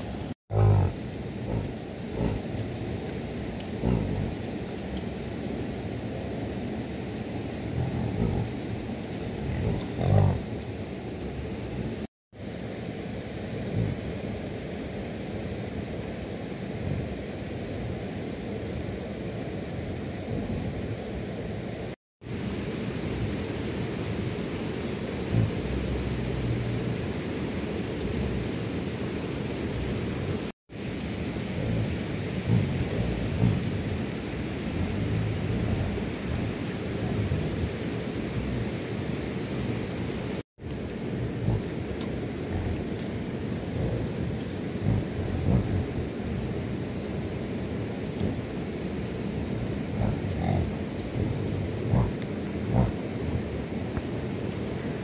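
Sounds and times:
low outdoor rumble: 0.0 - 55.0.

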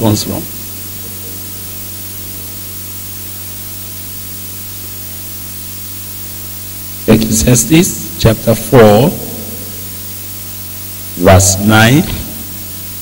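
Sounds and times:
low electrical hum: 0.0 - 13.0
steady hiss: 0.0 - 13.0.

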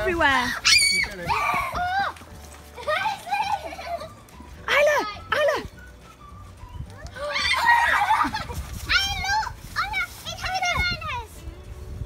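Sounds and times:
dry leaves crunching underfoot: 0.0 - 4.7, 5.7 - 11.9
children shrieking and squealing: 0.2 - 5.1, 6.9 - 11.4.

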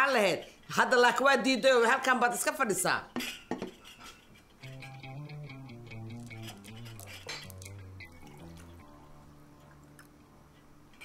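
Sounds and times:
cutlery clinking against dishes: 3.2 - 5.1
soft music: 4.6 - 11.0.

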